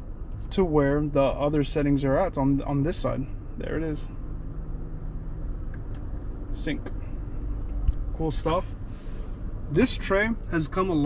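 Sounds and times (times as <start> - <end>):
car cabin engine rumble: 0.0 - 11.0.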